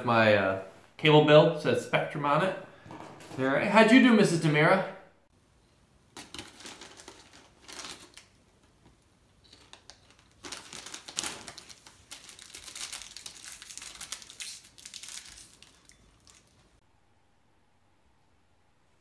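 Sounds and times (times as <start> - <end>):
plastic bags crinkling: 6.2 - 8.4, 9.4 - 16.8.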